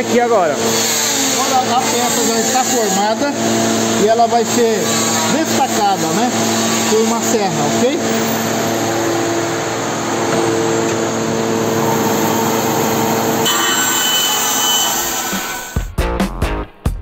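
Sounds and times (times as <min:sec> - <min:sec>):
band saw running: 0:00.0 - 0:15.9
music: 0:15.3 - 0:17.0.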